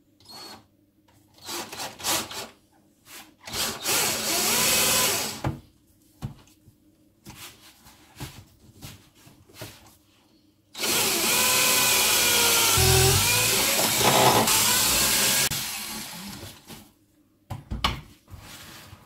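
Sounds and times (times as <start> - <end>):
cordless drill drilling into wood: 3.5 - 5.4, 10.8 - 16.4.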